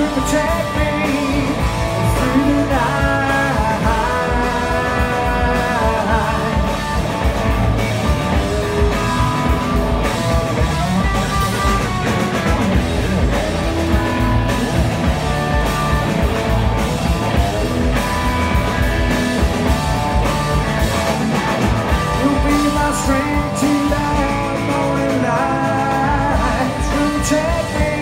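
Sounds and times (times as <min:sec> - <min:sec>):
bass guitar: 0:00.0 - 0:28.0
drums: 0:00.0 - 0:28.0
electric guitar: 0:00.0 - 0:28.0.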